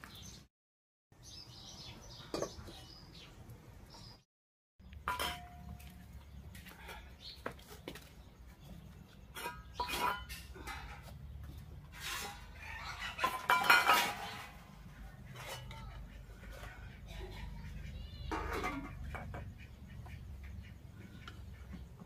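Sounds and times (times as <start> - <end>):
steel plates and spoons clattering: 5.0 - 5.8, 9.3 - 11.1, 11.9 - 16.9.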